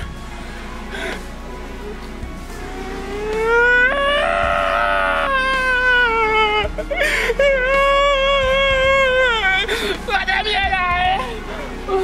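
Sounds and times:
man wailing crying: 3.4 - 12.0.

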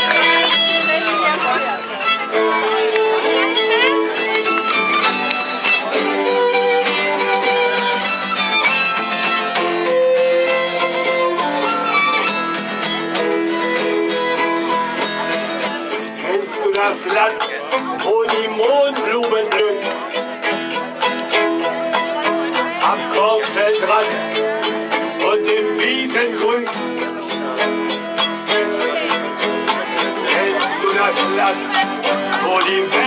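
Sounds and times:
fiddle playing bowed notes: 0.0 - 33.0.

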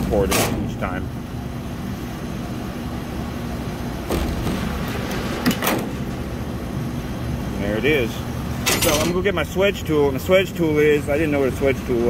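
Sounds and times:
machinery hum: 0.0 - 12.0.

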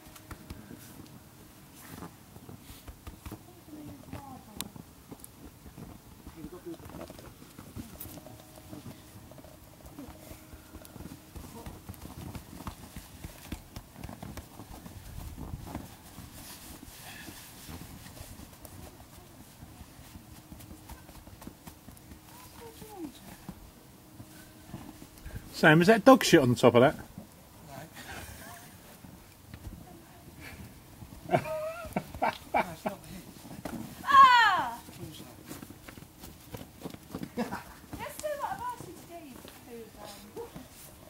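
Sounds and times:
hands packing snow: 0.1 - 23.6, 27.6 - 41.0
footsteps crunching in snow: 0.5 - 26.6, 27.7 - 41.0.

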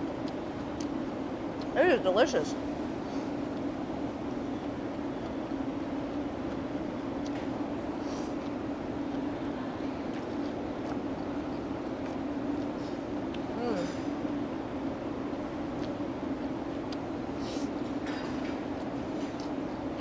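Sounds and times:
low background hum: 0.0 - 20.0
person humming: 13.5 - 14.0.

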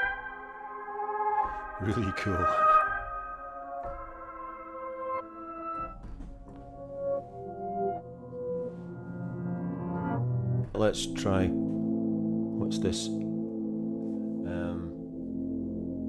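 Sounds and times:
reversed lo-fi piano melody: 0.0 - 16.0.

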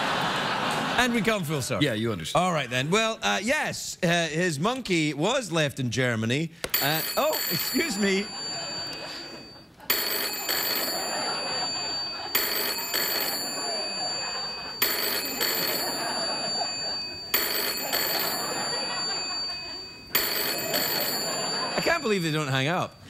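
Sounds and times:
telephone ringing: 6.6 - 23.0.

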